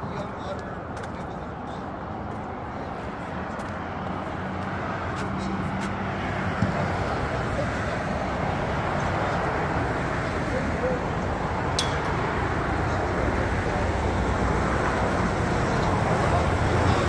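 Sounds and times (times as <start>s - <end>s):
road traffic noise: 0.0s - 17.0s
truck engine drone: 0.0s - 17.0s.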